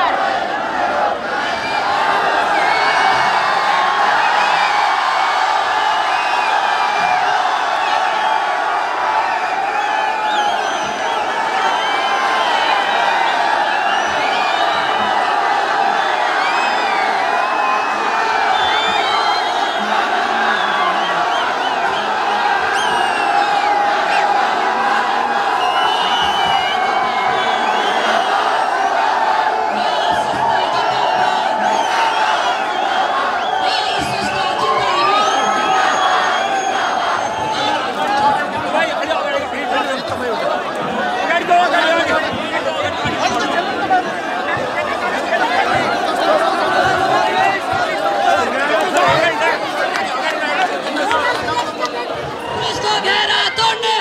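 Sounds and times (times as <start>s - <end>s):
crowd shouting and cheering: 0.0s - 54.0s.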